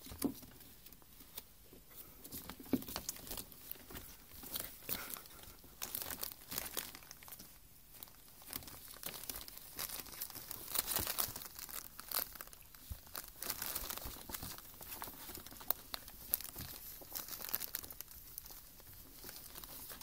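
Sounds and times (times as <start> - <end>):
paper bag crinkling and rustling: 2.3 - 20.0.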